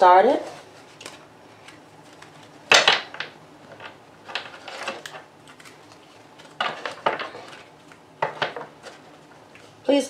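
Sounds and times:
cards being shuffled: 0.5 - 9.2.

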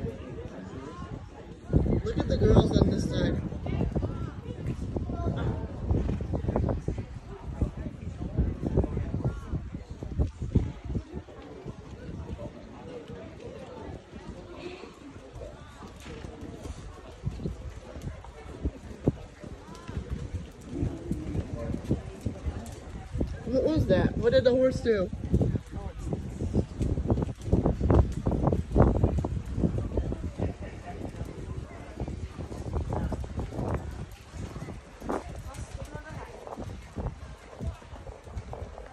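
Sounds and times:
faint voices: 0.0 - 38.9
spectators talking: 0.0 - 38.9
horse hoofbeats on dirt: 11.8 - 24.2, 25.0 - 38.9.

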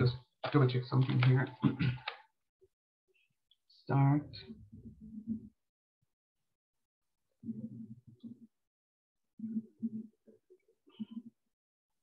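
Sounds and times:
muffled voice over video call: 0.0 - 2.2.

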